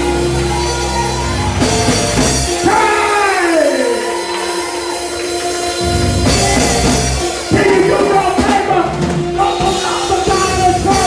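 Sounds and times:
drum kit: 0:00.0 - 0:11.0
held keyboard chord: 0:00.0 - 0:11.0.

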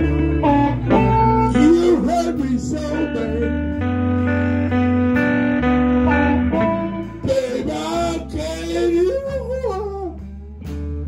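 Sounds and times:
band backing: 0:00.0 - 0:11.0
blues harmonica: 0:00.0 - 0:11.0.

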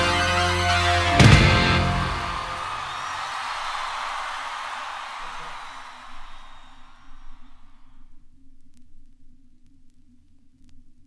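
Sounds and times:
live rock band and crowd: 0:00.0 - 0:03.3
record surface hiss: 0:02.8 - 0:11.0
record surface hum: 0:05.6 - 0:11.0.

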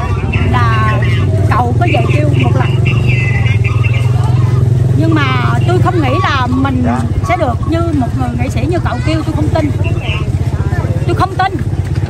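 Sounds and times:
engine idling hum: 0:00.0 - 0:12.0.

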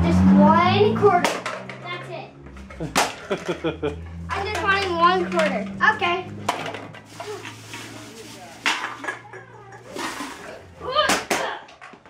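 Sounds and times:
aluminum cans clattering: 0:02.5 - 0:03.7, 0:04.3 - 0:12.0
plastic bag rustling: 0:06.9 - 0:09.0, 0:09.8 - 0:10.8.

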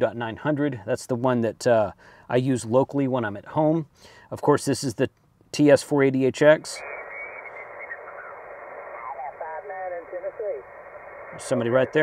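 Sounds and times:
radio static hiss: 0:06.4 - 0:12.0
faint radio voice: 0:06.6 - 0:12.0.

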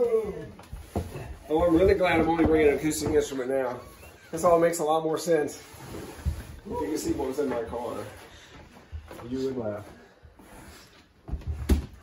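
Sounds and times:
dull thumps on wooden floor: 0:00.7 - 0:03.4.

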